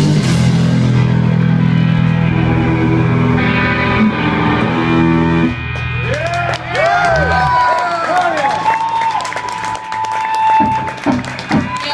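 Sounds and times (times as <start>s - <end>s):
rock band final chord: 0.0s - 8.6s
crowd whooping: 3.4s - 11.9s.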